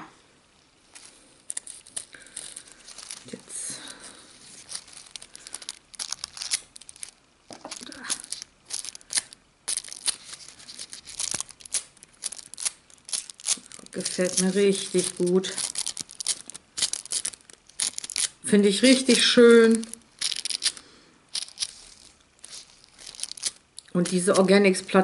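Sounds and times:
foil crinkling and crackling: 0:00.9 - 0:25.0.

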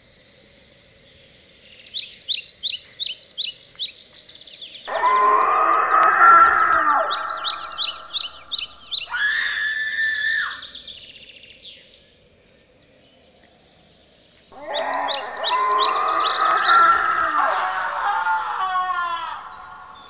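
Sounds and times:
high falling bird chirps: 0:01.6 - 0:11.9, 0:14.1 - 0:20.0
drawn-out bird cry: 0:04.8 - 0:11.0, 0:14.5 - 0:20.0
short steady bird call: 0:07.0 - 0:09.4.

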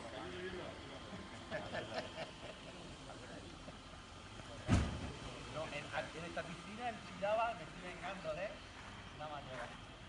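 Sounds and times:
faint voices talking: 0:00.0 - 0:10.0
low thump on microphone: 0:04.6 - 0:05.1.

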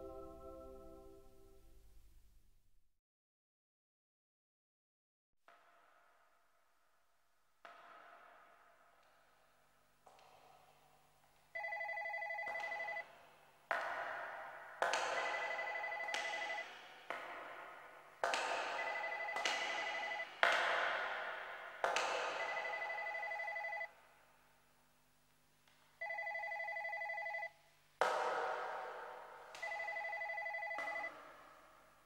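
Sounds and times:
music: 0:00.0 - 0:02.0
telephone bell ringing: 0:11.6 - 0:13.0, 0:15.2 - 0:16.7, 0:18.8 - 0:20.3, 0:22.4 - 0:23.9, 0:26.0 - 0:27.6, 0:29.6 - 0:31.2.

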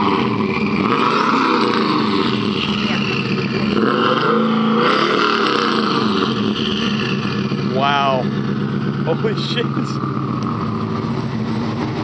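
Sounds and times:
truck engine revving: 0:00.0 - 0:12.0.

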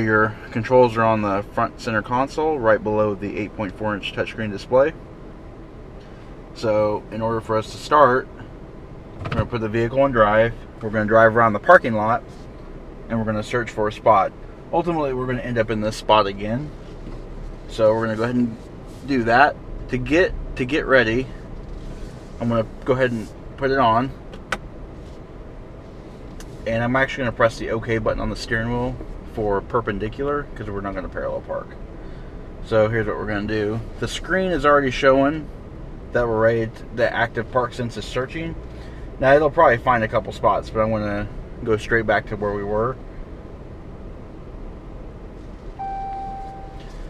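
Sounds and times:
low car cabin hum: 0:00.0 - 0:47.0
park-assist chime: 0:45.8 - 0:47.0.

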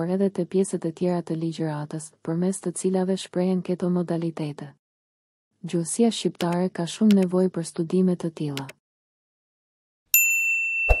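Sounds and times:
quick clicks: 0:06.4 - 0:07.3
notification bell chime: 0:10.2 - 0:11.0.

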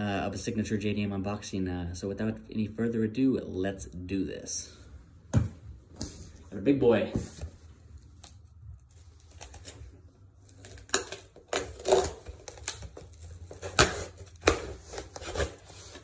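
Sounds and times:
knife cutting tape on cardboard: 0:10.6 - 0:16.0.

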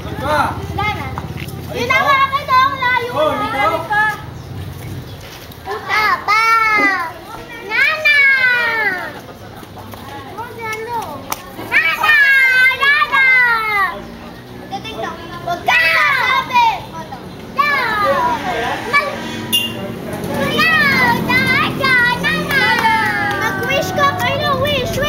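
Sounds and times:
children shouting and squealing: 0:00.0 - 0:04.4, 0:05.4 - 0:09.4, 0:10.1 - 0:25.0.

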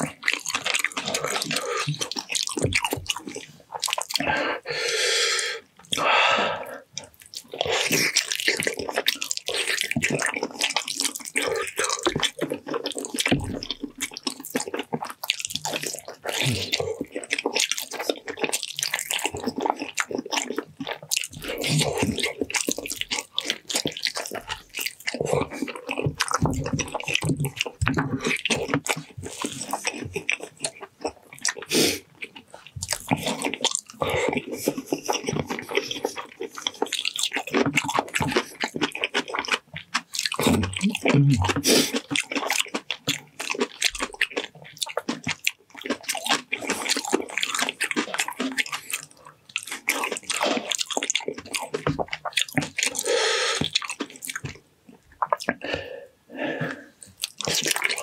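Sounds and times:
wet chewing and lip-smacking: 0:00.0 - 0:58.0.

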